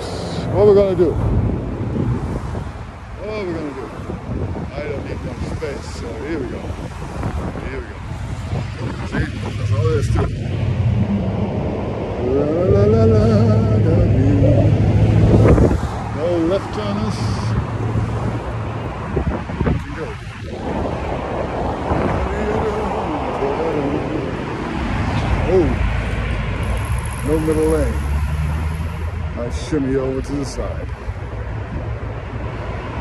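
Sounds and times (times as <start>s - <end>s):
wind buffeting microphone: 0.0s - 27.9s, 29.0s - 33.0s
city street traffic: 0.0s - 33.0s
vehicle engine hum: 0.0s - 33.0s.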